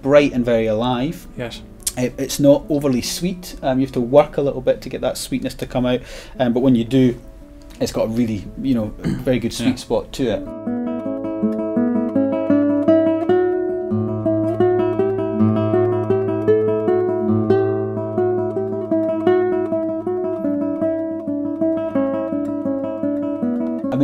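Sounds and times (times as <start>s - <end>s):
fingerstyle classical guitar: 0.0s - 24.0s.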